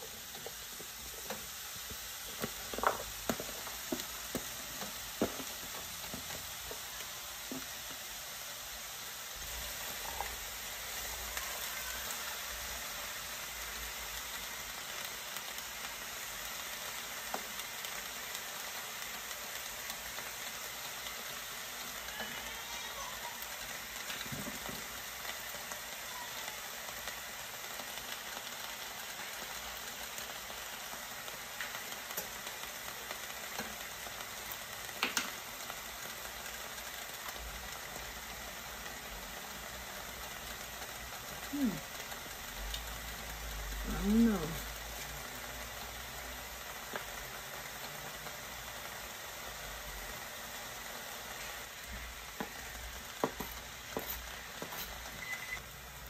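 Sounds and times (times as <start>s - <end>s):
vegetables sizzling in a pan: 0.0s - 56.0s.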